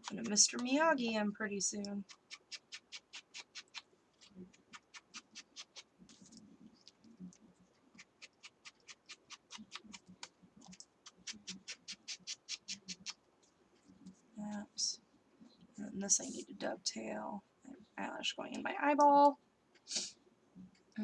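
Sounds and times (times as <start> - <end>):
quick scratching strokes: 2.0 - 6.3, 7.9 - 13.2.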